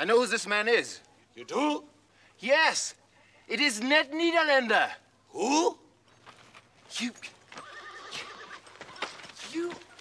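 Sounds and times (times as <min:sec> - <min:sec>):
horse whinnying: 0:07.5 - 0:09.2.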